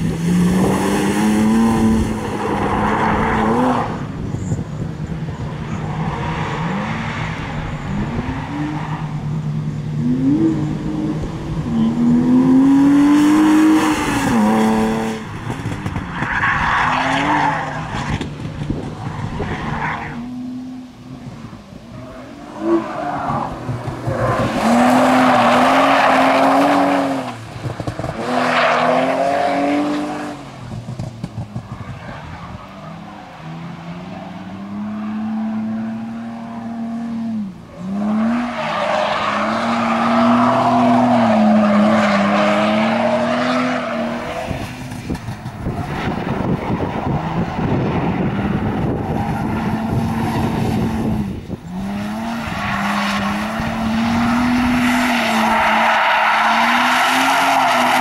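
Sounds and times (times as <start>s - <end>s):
car engine revving: 0.0s - 4.5s, 32.9s - 58.0s.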